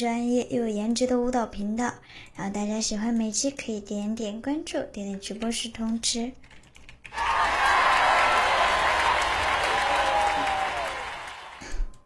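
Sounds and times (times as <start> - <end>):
woman talking: 0.0 - 6.4.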